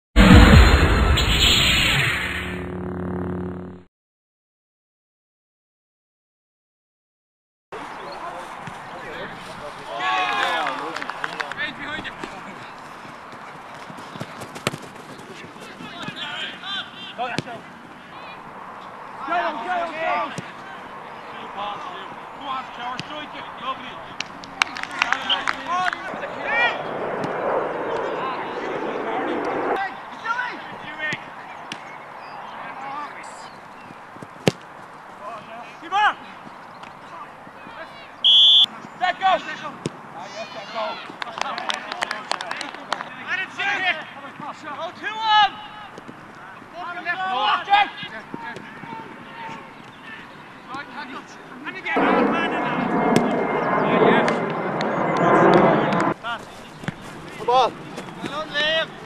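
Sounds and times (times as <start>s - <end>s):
players running and kicking ball: 7.8s - 26.2s, 30.5s - 32.0s, 32.6s - 51.8s, 55.9s - 59.0s
players shouting: 9.1s - 12.7s, 44.5s - 51.9s
referee's whistle blast: 38.2s - 38.7s.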